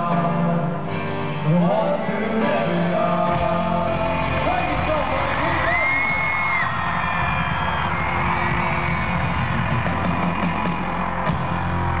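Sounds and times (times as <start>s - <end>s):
live band music: 0.0s - 12.0s
crowd whooping: 4.2s - 12.0s.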